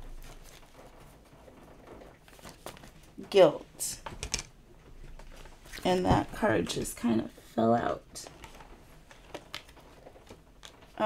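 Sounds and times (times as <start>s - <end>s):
cards being shuffled: 2.2s - 3.1s, 8.2s - 11.0s.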